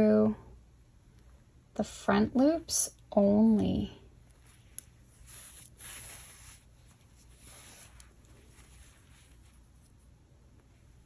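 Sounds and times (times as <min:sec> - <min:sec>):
yarn rustling: 0:04.2 - 0:11.0.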